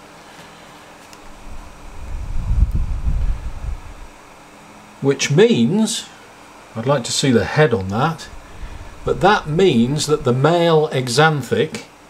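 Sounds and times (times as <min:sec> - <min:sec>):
microphone handling rumble: 0:01.2 - 0:04.2, 0:07.8 - 0:10.6.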